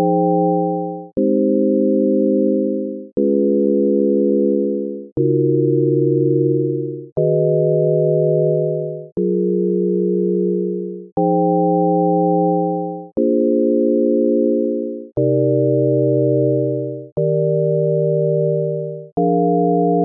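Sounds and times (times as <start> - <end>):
synthesizer sine tone chords: 0.0 - 20.0.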